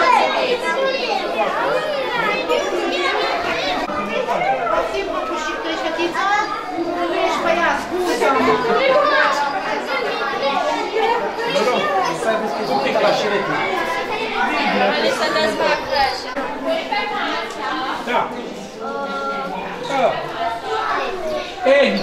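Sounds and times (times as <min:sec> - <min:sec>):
children chattering and calling out: 0:00.0 - 0:22.0.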